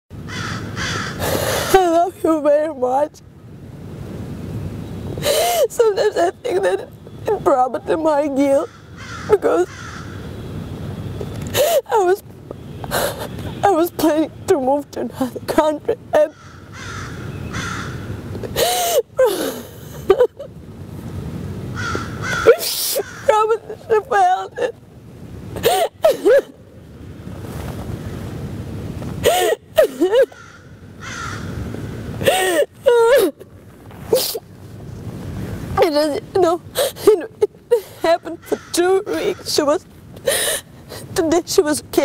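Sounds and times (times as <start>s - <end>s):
woman crying and sobbing: 5.2s - 8.6s, 11.5s - 12.2s, 18.4s - 20.5s, 22.5s - 24.8s, 25.6s - 26.6s, 29.2s - 30.4s, 32.2s - 33.5s, 35.8s - 41.3s
woman wailing: 22.5s - 24.8s.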